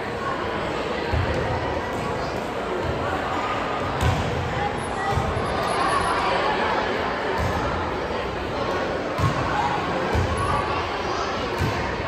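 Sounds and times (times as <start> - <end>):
spectators chattering in gym: 0.0 - 12.0.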